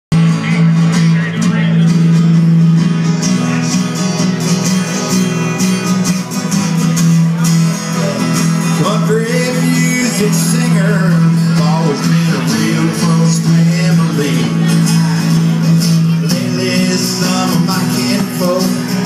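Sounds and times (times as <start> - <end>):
acoustic guitars strummed: 0.1 - 19.0.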